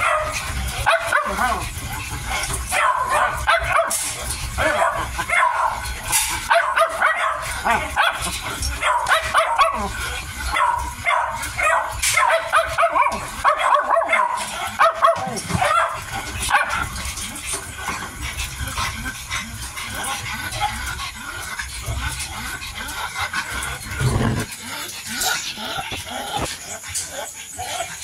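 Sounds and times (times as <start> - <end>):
puppies eating: 0.0 - 28.0.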